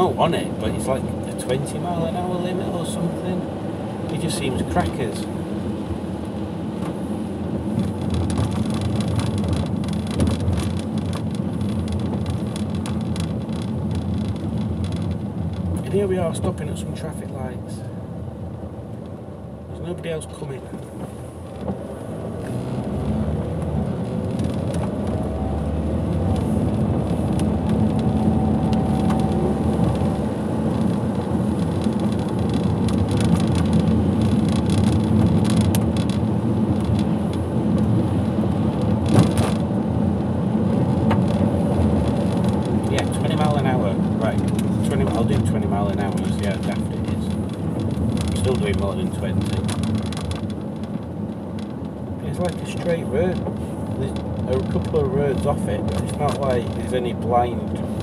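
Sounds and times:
car engine: 0.0s - 58.0s
tyres on wet road: 0.0s - 58.0s.

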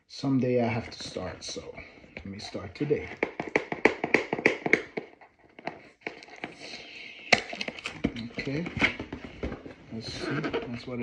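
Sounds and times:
cardboard box taps and knocks: 3.0s - 6.5s, 7.4s - 9.8s.

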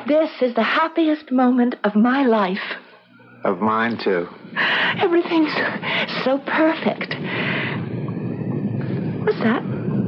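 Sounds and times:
flood wave low rumble: 3.6s - 10.0s.

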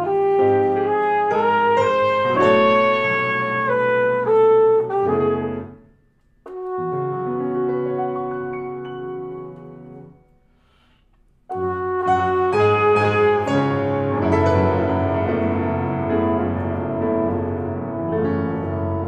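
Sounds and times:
free jazz trumpet: 0.0s - 9.8s, 11.5s - 19.0s
grand piano chords and runs: 0.0s - 10.3s, 11.6s - 19.0s.

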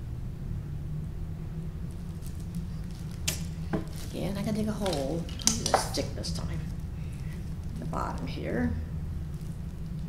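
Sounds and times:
low hum: 0.0s - 10.0s
water patter and crackle: 1.8s - 10.0s.

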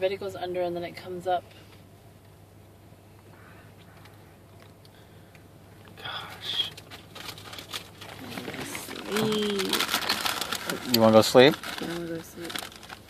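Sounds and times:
chip bag crinkling: 6.1s - 13.0s.

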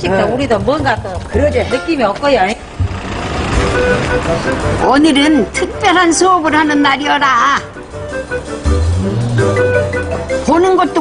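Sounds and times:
minibus passing: 1.0s - 10.7s.

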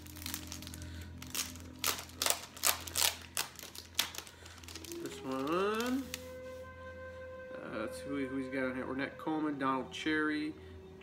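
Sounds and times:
plastic record sleeve crinkling: 0.0s - 6.5s.

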